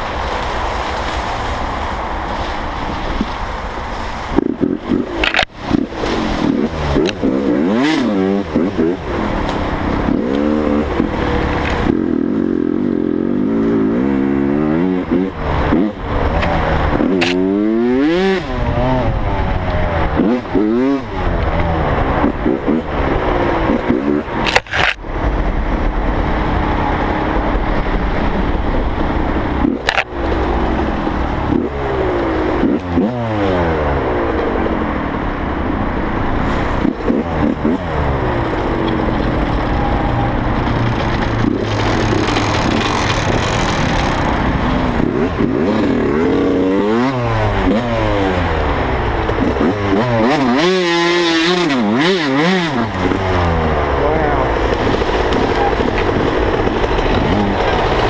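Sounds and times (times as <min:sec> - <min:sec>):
dirt bike engine revving: 0:04.4 - 0:24.9, 0:29.3 - 0:34.9, 0:36.4 - 0:58.0.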